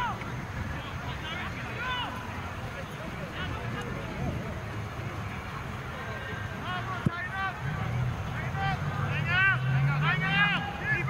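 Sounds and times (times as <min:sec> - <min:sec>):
players shouting: 0:00.0 - 0:11.0.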